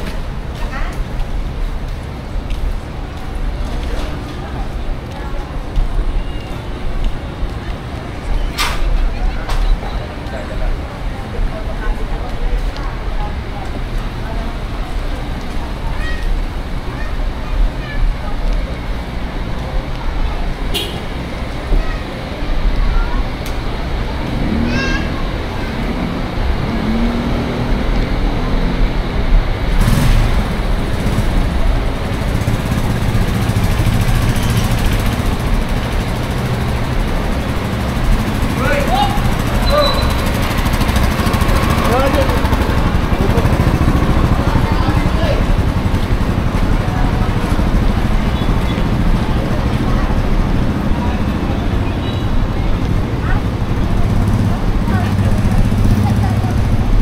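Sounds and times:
passersby voices: 0.0 - 57.0.

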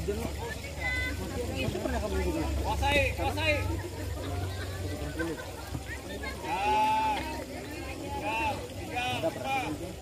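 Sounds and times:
voices shouting and calling: 0.0 - 10.0.

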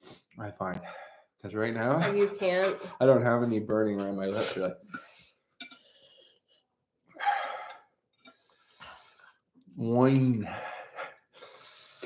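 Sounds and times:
person breathing hard: 7.2 - 9.4, 10.4 - 12.0.

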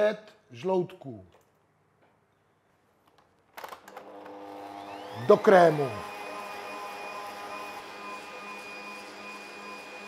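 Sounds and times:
stand mixer motor whine: 3.9 - 10.0.

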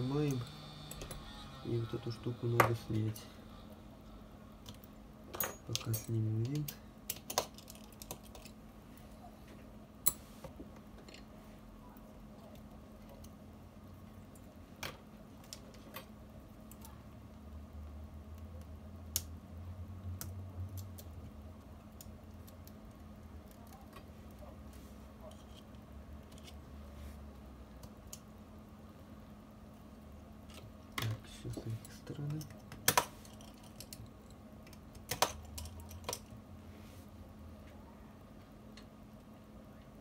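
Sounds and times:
small parts being handled: 4.5 - 9.2, 25.2 - 26.7, 30.4 - 36.4.

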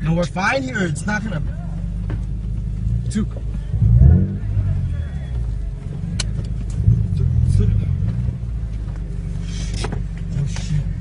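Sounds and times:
car engine rumble from inside: 0.0 - 11.0.

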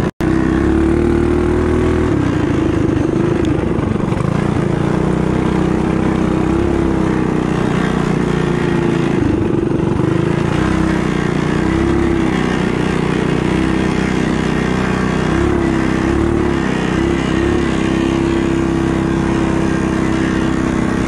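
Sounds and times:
mini bike engine revving high: 0.0 - 21.0.

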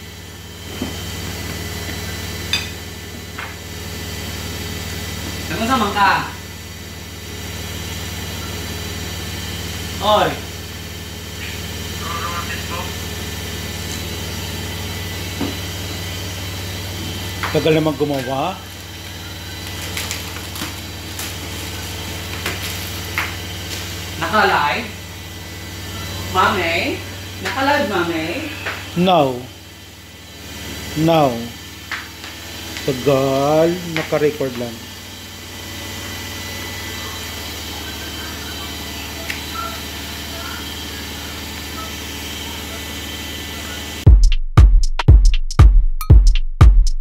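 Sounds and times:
low machine hum with hiss: 0.0 - 44.0.

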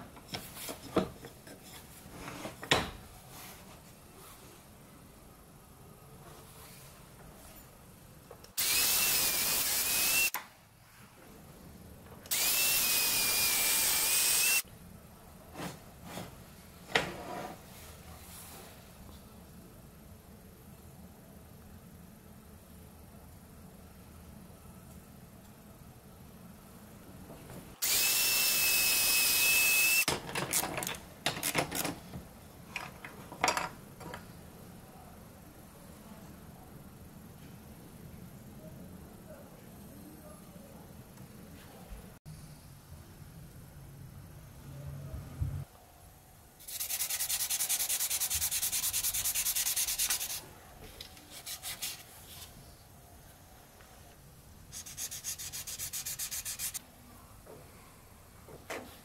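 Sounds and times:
power tool high whine: 8.6 - 10.4, 12.3 - 14.6, 27.8 - 30.1
sandpaper rubbing on wood: 46.6 - 50.4, 51.3 - 52.1, 54.7 - 56.8.

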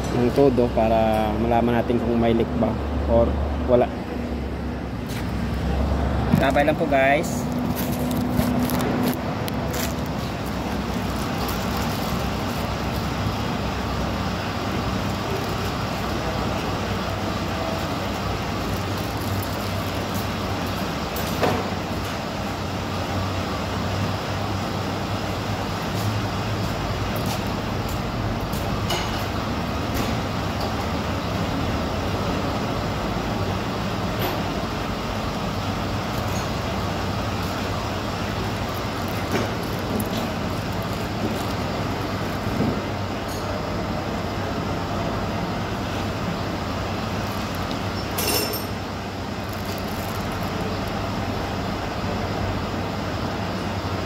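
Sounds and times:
truck engine idling: 2.0 - 54.0.

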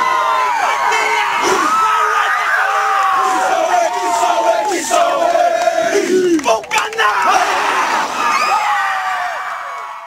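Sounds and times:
team shouting war cries: 0.0 - 9.7.

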